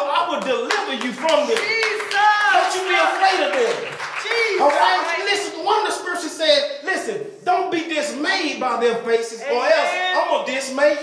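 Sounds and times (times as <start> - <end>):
man preaching into a microphone: 0.0 - 11.0
hand clapping: 0.4 - 5.5.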